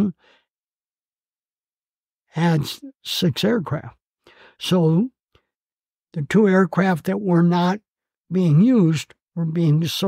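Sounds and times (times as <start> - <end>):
faint breath: 0.2 - 0.5, 4.2 - 4.6
man speaking: 2.3 - 4.0, 4.6 - 5.2, 6.2 - 10.0.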